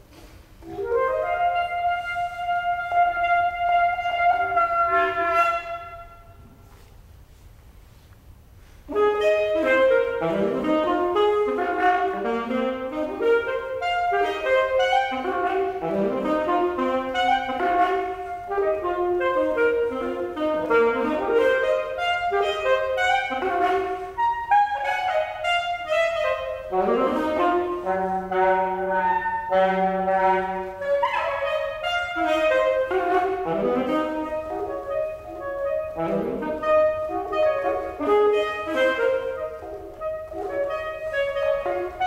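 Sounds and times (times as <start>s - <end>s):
alto saxophone playing fast notes: 0.6s - 6.8s, 8.8s - 42.0s.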